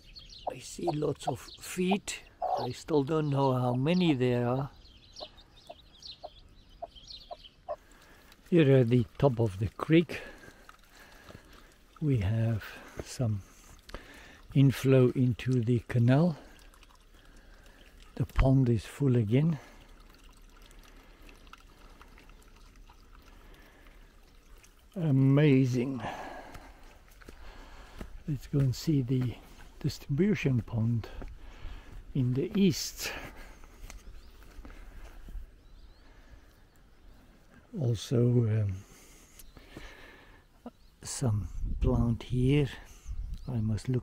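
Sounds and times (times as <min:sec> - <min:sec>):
chicks peeping: 0:00.0 - 0:04.1, 0:04.8 - 0:07.8
water trickling into a pond: 0:00.0 - 0:44.0
hen clucking softly: 0:00.4 - 0:02.8, 0:05.2 - 0:07.8
soft water drips: 0:04.6 - 0:40.3.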